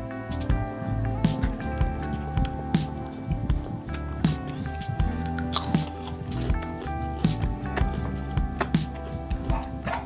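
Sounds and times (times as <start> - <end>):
background music: 0.0 - 10.0
wet chewing of fruit: 0.9 - 10.0
mouth smacks: 1.1 - 10.0.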